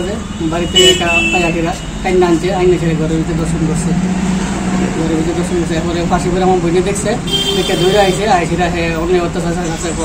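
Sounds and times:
man speaking: 0:00.0 - 0:10.0
high horn toot: 0:00.4 - 0:02.1, 0:07.2 - 0:08.4
steady low hum: 0:02.2 - 0:09.0.

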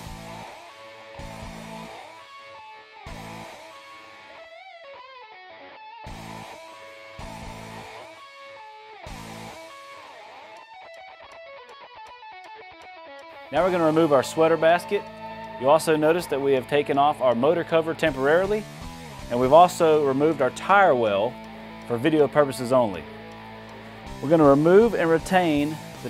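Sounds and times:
guitar-led instrumental music: 0:00.0 - 0:26.0.

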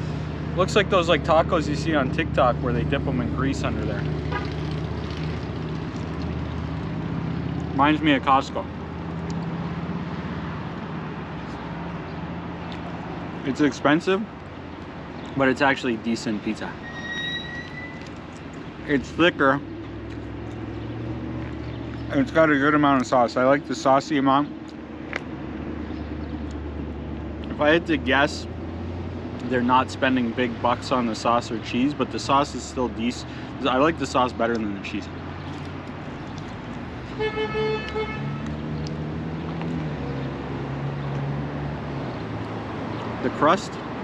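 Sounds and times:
vehicle engine humming: 0:00.0 - 0:44.0
car horn toot: 0:37.2 - 0:38.5.

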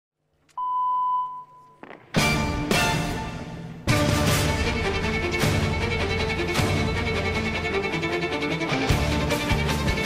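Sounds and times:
electronic beep: 0:00.6 - 0:01.8.

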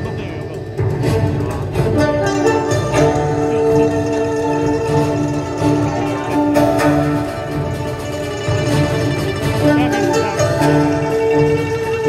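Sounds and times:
violin melody: 0:00.0 - 0:12.0.

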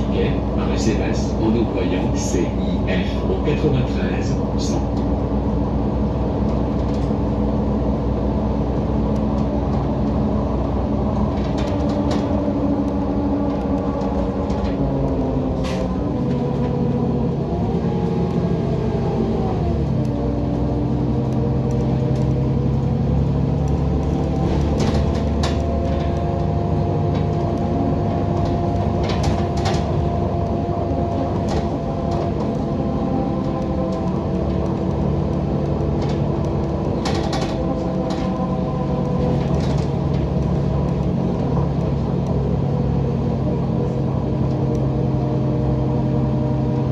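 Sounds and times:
bus diesel engine running: 0:00.0 - 0:46.9
rattles and clicks: 0:06.4 - 0:07.3, 0:11.0 - 0:18.4, 0:21.2 - 0:42.7.

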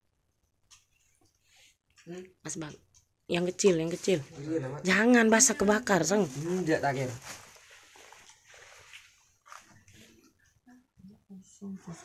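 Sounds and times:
small noises: 0:00.0 - 0:12.0
woman's voice: 0:02.1 - 0:04.3, 0:04.9 - 0:06.3.

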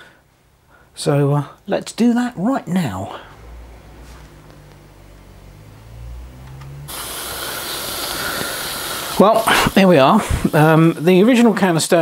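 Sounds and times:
steam boiler hissing: 0:06.9 - 0:12.0.

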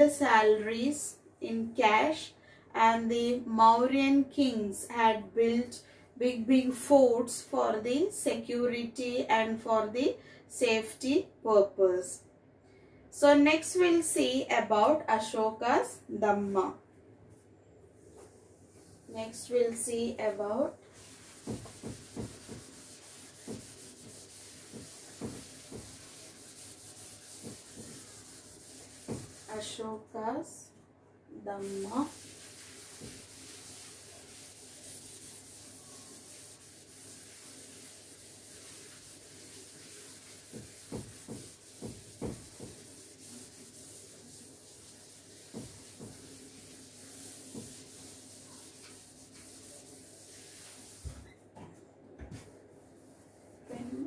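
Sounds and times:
whiteboard being wiped: 0:16.4 - 0:29.8, 0:31.6 - 0:54.0.

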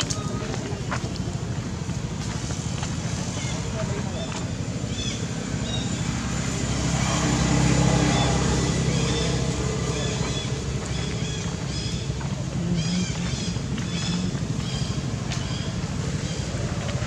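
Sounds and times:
vehicle engine hum: 0:00.0 - 0:17.0.

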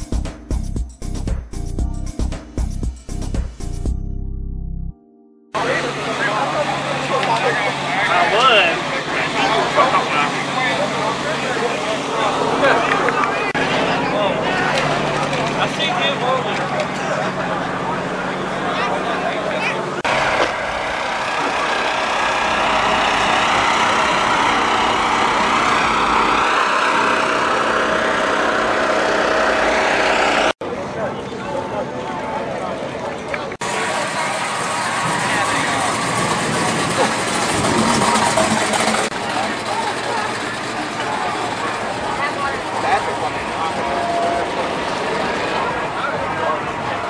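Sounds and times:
vehicle engine running: 0:05.6 - 0:30.6, 0:33.6 - 0:47.0
crowd chatter: 0:05.6 - 0:47.0.

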